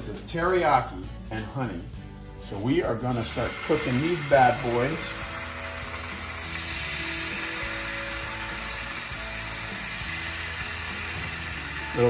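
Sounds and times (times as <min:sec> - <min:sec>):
fish sizzling in hot oil: 0:03.1 - 0:12.0.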